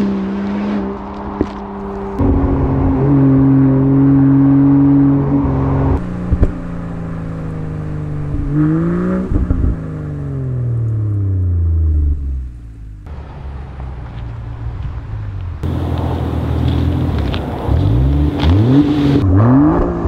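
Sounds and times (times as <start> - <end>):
car engine revving: 0.0 - 20.0
exhaust pops: 5.9 - 7.5, 8.2 - 9.9.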